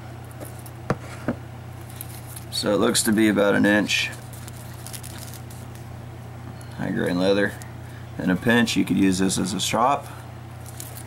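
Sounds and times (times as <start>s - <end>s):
low room hum: 0.0s - 11.0s
faint handling rustles: 0.2s - 6.0s, 10.0s - 11.0s.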